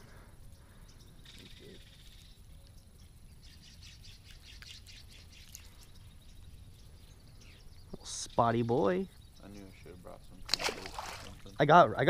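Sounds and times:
faint bird chirps: 0:00.0 - 0:11.7
high bird trill: 0:00.0 - 0:12.0.

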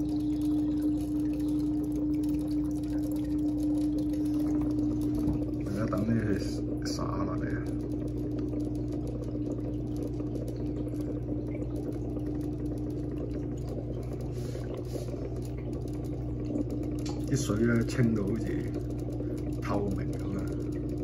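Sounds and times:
aquarium filter hum: 0:00.0 - 0:21.0
moving water: 0:00.0 - 0:21.0.

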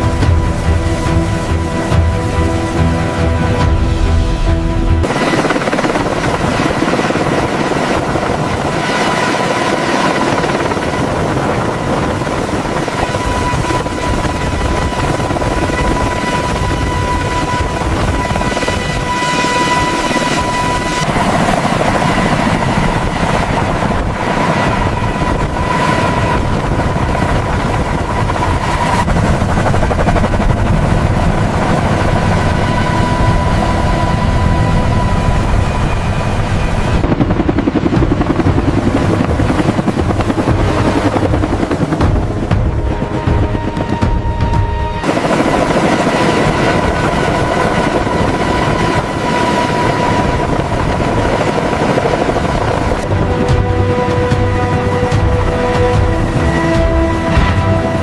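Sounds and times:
helicopter rotor and engines: 0:00.0 - 0:58.0.

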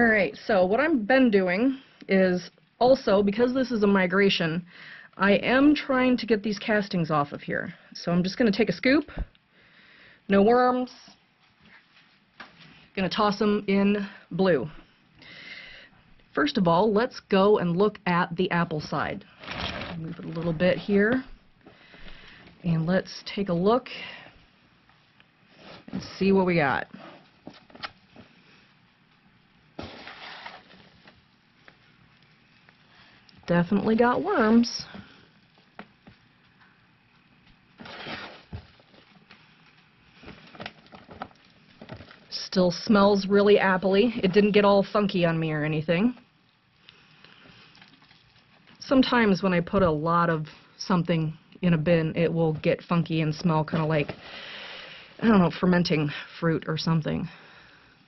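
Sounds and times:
light crackles: 0:24.0 - 0:42.7, 0:46.2 - 0:48.8.

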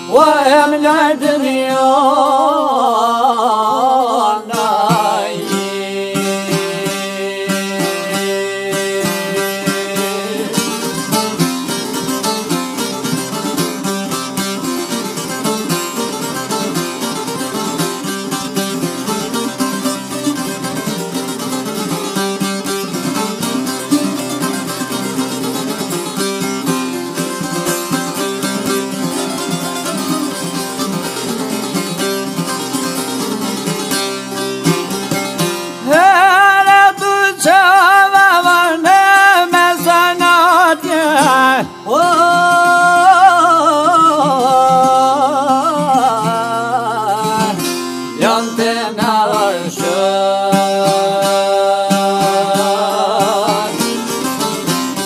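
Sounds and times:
plucked lutes fast melody: 0:04.5 - 0:55.0.

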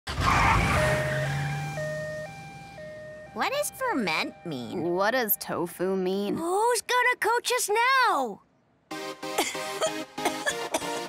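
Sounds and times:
two-tone siren: 0:00.4 - 0:04.9
steady engine hum: 0:00.5 - 0:05.5.

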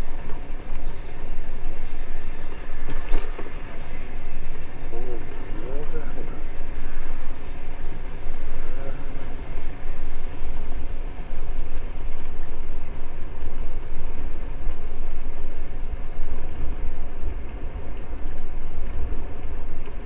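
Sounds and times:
wind buffeting microphone: 0:00.0 - 0:20.0
bicycle tyre rumble on bricks: 0:06.4 - 0:20.0.

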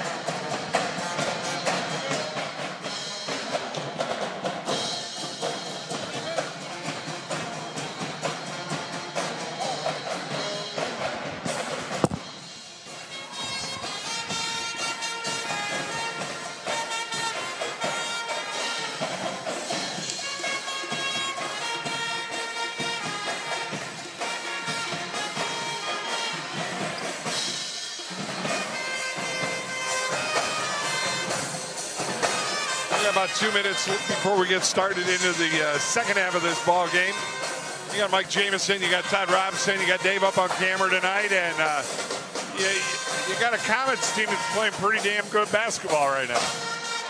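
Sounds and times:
band playing brass and wind tune: 0:00.0 - 0:47.0
drums: 0:00.0 - 0:47.0.

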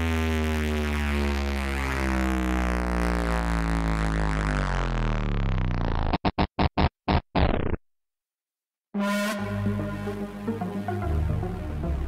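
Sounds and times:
buzzing synthesizer drone: 0:00.0 - 0:06.2, 0:09.0 - 0:12.0.

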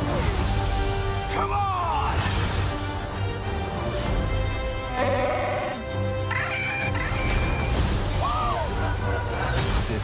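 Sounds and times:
trailer music with low pulse: 0:00.0 - 0:10.0.

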